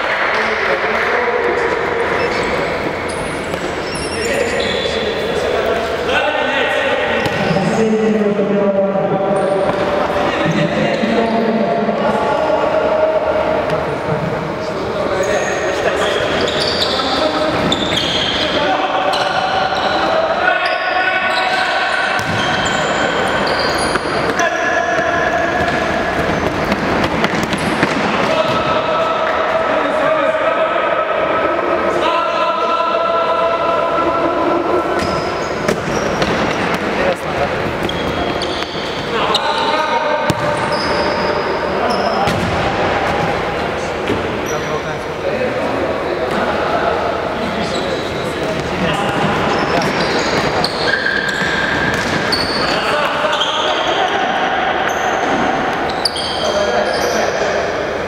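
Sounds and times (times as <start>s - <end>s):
players shouting in gym hall: 15.1s - 37.1s, 45.9s - 58.0s
ball kicks and bounces on wooden floor: 40.3s - 40.5s.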